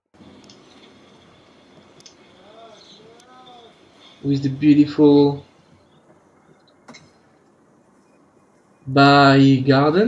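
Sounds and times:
man narrating: 0:02.4 - 0:05.5, 0:08.8 - 0:10.0.

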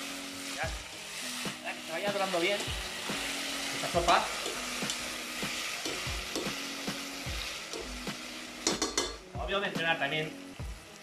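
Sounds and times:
leek sizzling in oil: 0:00.0 - 0:11.0
utensil knocking against pan: 0:05.8 - 0:06.6, 0:08.6 - 0:09.2.

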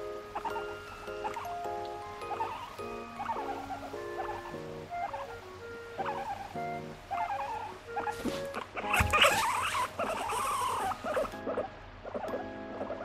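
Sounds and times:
guinea pig squealing: 0:00.0 - 0:13.0.

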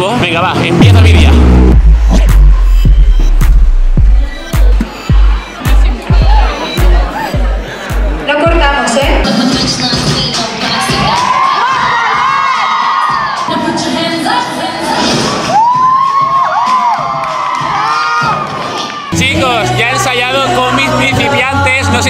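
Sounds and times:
music with steady bass: 0:00.0 - 0:11.2, 0:19.2 - 0:22.0
young voices cheering and whooping: 0:10.8 - 0:13.5, 0:14.8 - 0:19.2.

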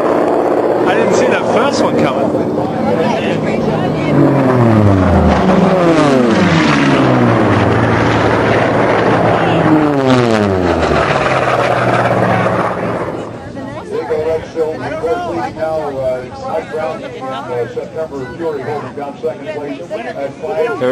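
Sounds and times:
racing planes passing by: 0:00.0 - 0:20.9.

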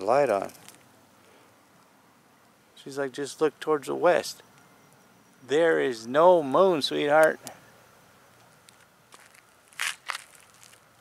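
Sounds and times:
footsteps crunching on dry ground: 0:08.7 - 0:11.0.

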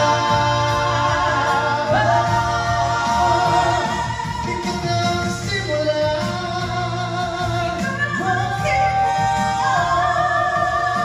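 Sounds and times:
people singing in harmony: 0:00.0 - 0:11.0.

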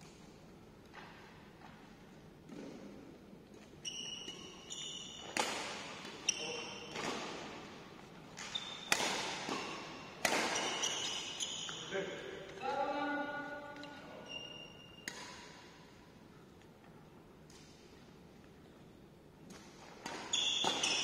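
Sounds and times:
court shoes squeaking: 0:00.9 - 0:12.7, 0:13.8 - 0:15.8, 0:18.6 - 0:21.0
badminton racket hitting shuttlecock: 0:08.4 - 0:11.2.

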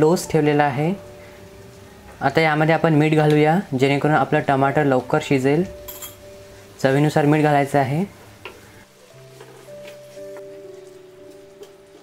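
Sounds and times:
onion and tomato sizzling in oil: 0:00.0 - 0:12.0.

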